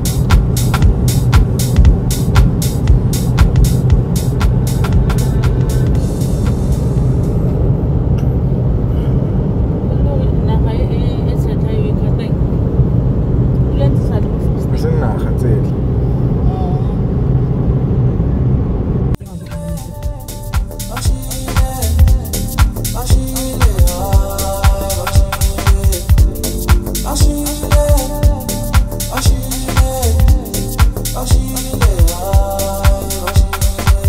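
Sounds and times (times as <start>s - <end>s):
music with sharp beat: 0.0s - 7.5s, 19.2s - 34.0s
car cabin road rumble: 0.0s - 30.4s
woman talking: 9.9s - 12.4s, 13.7s - 14.5s, 16.4s - 17.0s.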